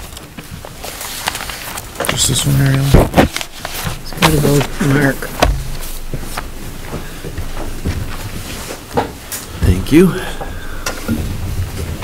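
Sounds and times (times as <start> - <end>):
papers and pens clicking and knocking: 0.0 - 7.7.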